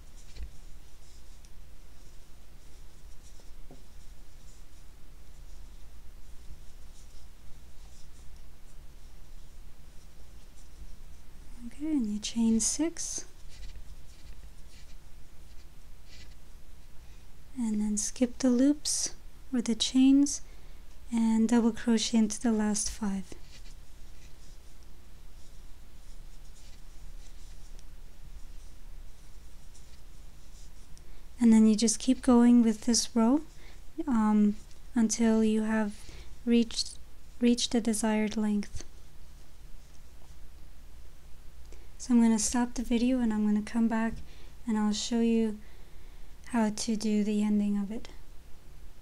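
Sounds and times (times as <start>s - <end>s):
crochet hook rubbing yarn: 0.0s - 16.4s, 21.3s - 35.9s
low steady hum: 0.0s - 49.0s.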